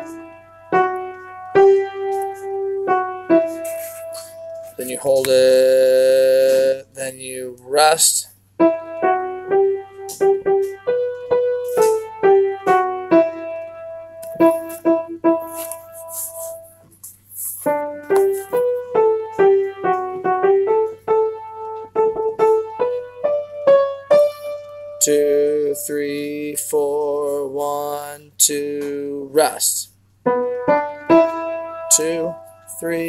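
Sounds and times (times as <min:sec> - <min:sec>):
piano notes and chords: 0:00.0 - 0:33.0.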